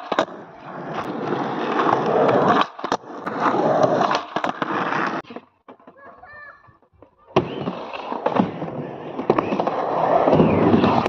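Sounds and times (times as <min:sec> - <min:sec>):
skateboard wheels on asphalt: 0:00.0 - 0:11.0.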